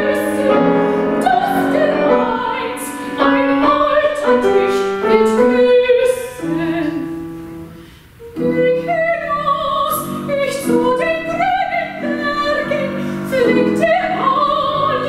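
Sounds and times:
grand piano accompaniment: 0:00.0 - 0:15.0
soprano singing: 0:00.0 - 0:15.0.

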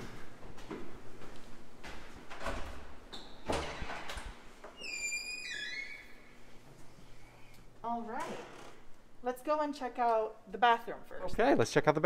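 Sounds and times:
door hinge squeak: 0:04.8 - 0:06.2.

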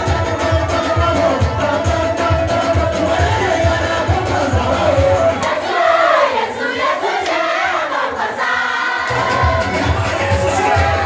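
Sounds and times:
crowd singing in unison: 0:00.0 - 0:11.0.

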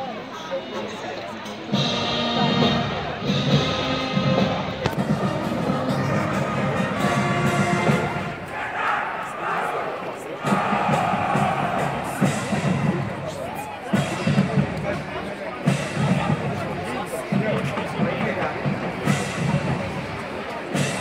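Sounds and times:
crowd noise: 0:00.0 - 0:21.0
brass and percussion band music: 0:01.4 - 0:21.0.

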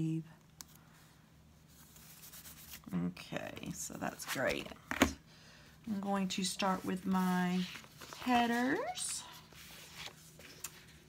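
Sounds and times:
paper rubbing and rustling: 0:01.7 - 0:02.9, 0:06.6 - 0:11.0.

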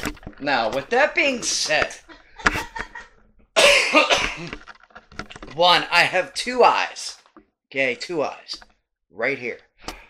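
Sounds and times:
man coughing: 0:03.6 - 0:04.5.

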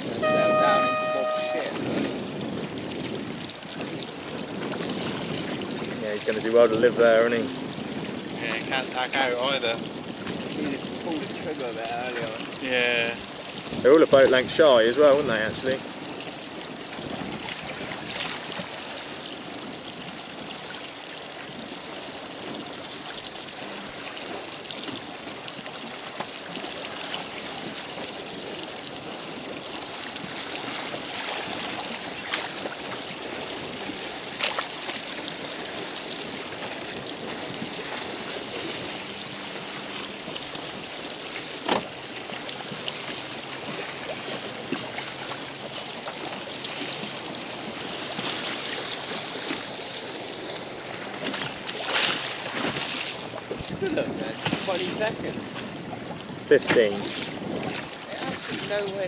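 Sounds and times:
sea water lapping and splashing: 0:00.0 - 0:59.0.

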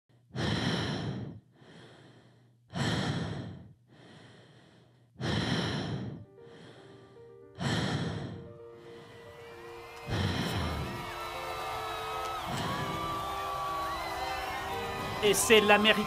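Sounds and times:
person breathing hard: 0:00.1 - 0:09.4, 0:10.0 - 0:11.2.

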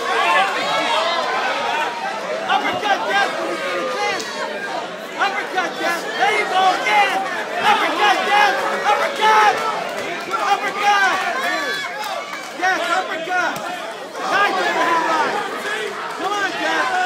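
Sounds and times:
crowd talking and calling out: 0:00.0 - 0:17.0.

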